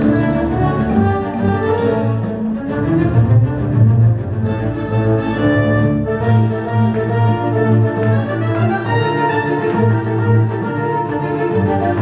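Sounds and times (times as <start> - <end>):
orchestral ballet music with strings: 0.0 - 12.0.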